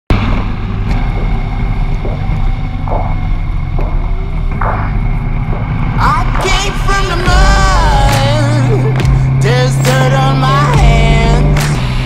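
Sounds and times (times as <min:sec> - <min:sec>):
motorcycle engine drone: 0:00.1 - 0:12.0
road noise: 0:00.1 - 0:12.0.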